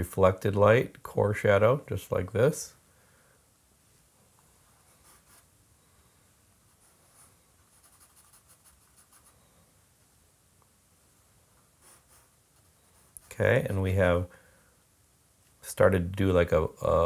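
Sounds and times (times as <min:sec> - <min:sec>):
charcoal scratching on paper: 0:06.7 - 0:09.4, 0:11.8 - 0:13.4.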